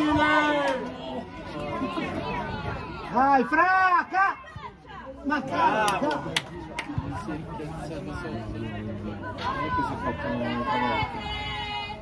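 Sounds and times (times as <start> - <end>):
spectator chatter: 0.0 - 12.0.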